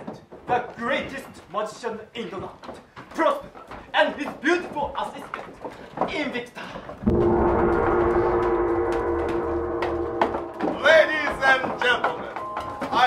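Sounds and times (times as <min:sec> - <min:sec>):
gong ringing: 0:07.0 - 0:11.9.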